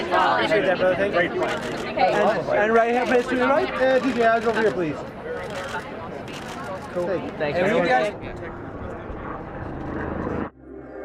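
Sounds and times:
faint voices: 0:00.0 - 0:10.1
low rumble: 0:08.1 - 0:11.0.

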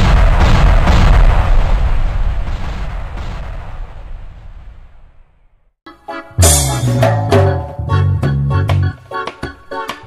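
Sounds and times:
crashing impact with low rumble: 0:00.0 - 0:05.2.

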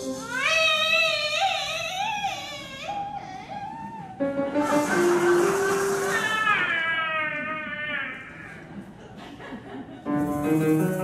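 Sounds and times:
hissing high wash: 0:04.5 - 0:06.7.

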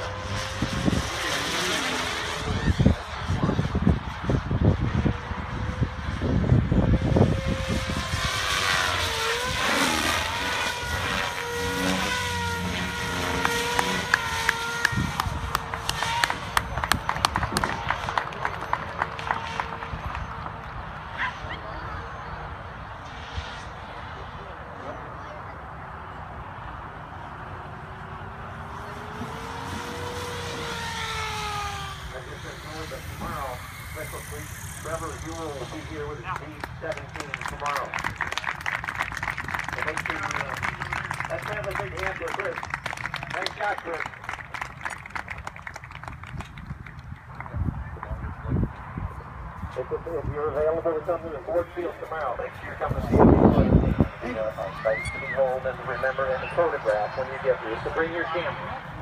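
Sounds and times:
rc helicopter motor whine: 0:00.0 - 0:18.2, 0:27.7 - 0:37.3
wind rumbling on microphone: 0:00.0 - 0:24.0, 0:45.0 - 0:56.6
rc helicopter whining: 0:00.0 - 0:59.0.

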